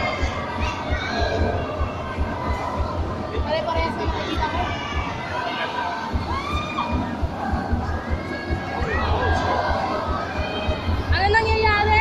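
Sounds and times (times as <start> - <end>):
low thudding pulse: 0.0 - 5.3, 6.1 - 12.0
children shouting and cheering: 3.9 - 7.2, 7.8 - 11.0.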